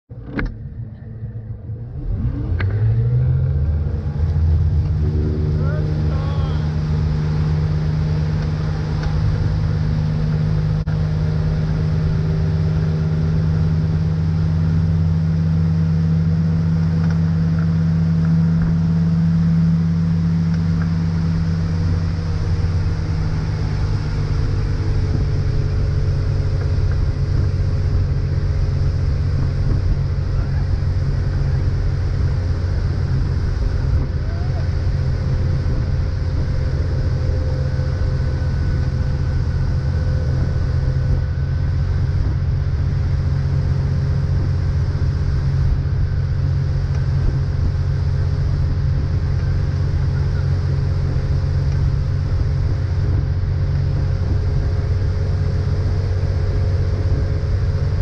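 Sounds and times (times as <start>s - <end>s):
boat engine accelerating: 0.1s - 58.0s
rush of boat wake: 2.0s - 58.0s.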